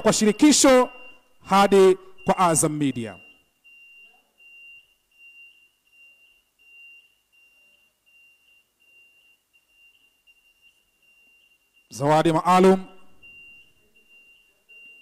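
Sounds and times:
faint high-pitched pulsing electronic tone: 0.0s - 12.0s, 12.8s - 15.0s.

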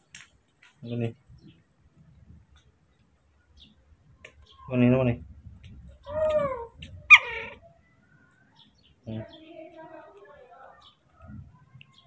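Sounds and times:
baby monkey calling: 6.0s - 7.7s.

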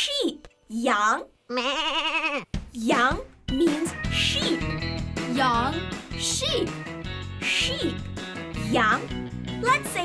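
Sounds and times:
light children's music: 0.0s - 1.1s, 2.6s - 10.0s
cartoon sheep bleating: 1.5s - 2.5s.

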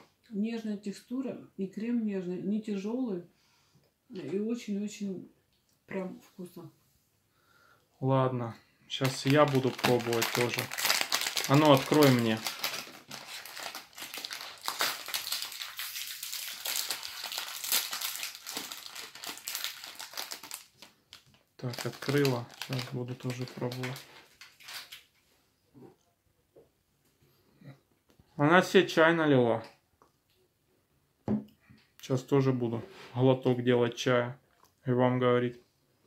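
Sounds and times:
foil wrapper crinkling: 9.0s - 25.2s.

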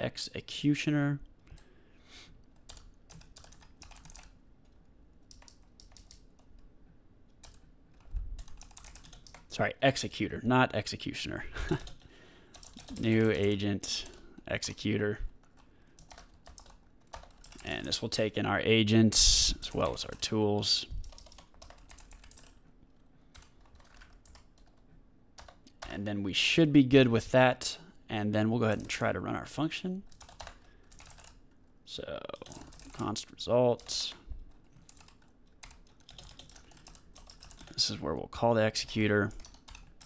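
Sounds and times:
computer keyboard typing: 2.6s - 6.6s, 7.3s - 9.5s, 11.7s - 14.2s, 15.4s - 18.0s, 19.6s - 22.7s, 23.3s - 24.8s, 25.4s - 26.0s, 30.1s - 31.5s, 32.3s - 37.8s, 39.2s - 40.0s.

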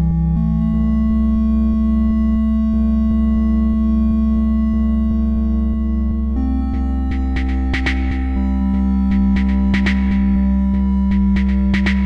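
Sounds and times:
steady low bass: 0.0s - 12.0s
sustained synthesizer tones: 0.0s - 12.0s
faint ticking pulse: 0.4s - 12.0s.

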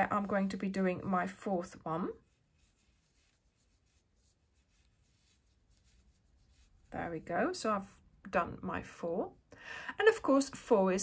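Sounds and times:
yarn rubbing on crochet hook: 0.0s - 7.5s.

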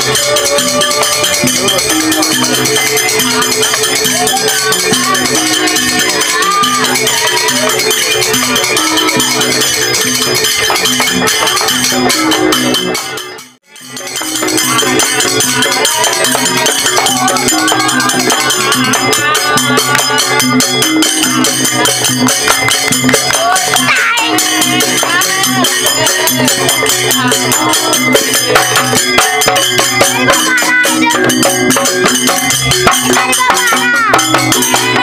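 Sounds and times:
barrel drums and gongs: 0.0s - 35.0s
jingling rattling percussion: 0.0s - 35.0s
wavering melody: 0.0s - 35.0s.

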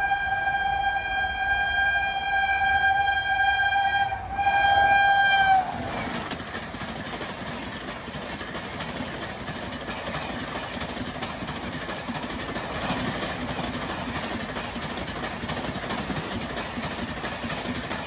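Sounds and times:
locomotive horn: 0.0s - 6.0s
train wheels rumbling on rails: 4.1s - 18.0s.

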